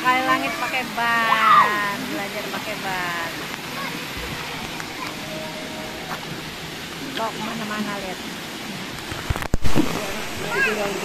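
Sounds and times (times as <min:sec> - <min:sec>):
water splashing in pool: 0:00.0 - 0:11.0
faint children's voices: 0:03.4 - 0:06.3, 0:10.2 - 0:11.0.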